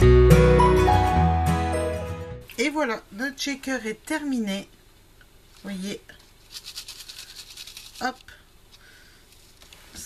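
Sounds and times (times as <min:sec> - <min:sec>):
plastic gems rattling in shaker card: 0:05.6 - 0:08.4.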